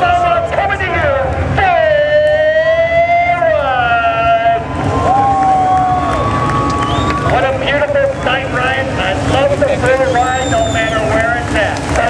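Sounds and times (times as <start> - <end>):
crowd cheering and shouting: 0.0 - 12.0
race car engines at high revs: 0.0 - 12.0.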